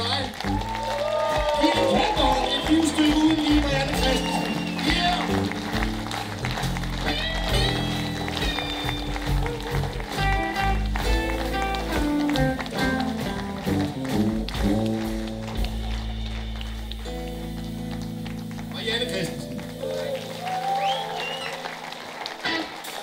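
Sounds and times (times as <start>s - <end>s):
blues band playing live: 0.0s - 23.0s
electric guitar bending notes: 2.3s - 22.9s.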